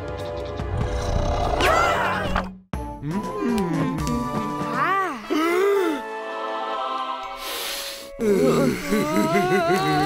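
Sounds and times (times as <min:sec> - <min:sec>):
cartoon background music: 0:00.0 - 0:10.0
character's wordless vocal sounds: 0:08.1 - 0:10.0.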